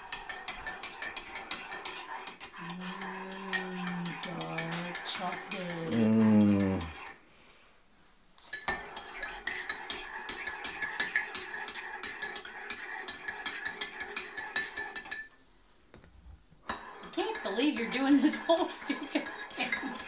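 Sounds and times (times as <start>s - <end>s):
spoon clinking in ceramic mug: 2.8s - 5.5s.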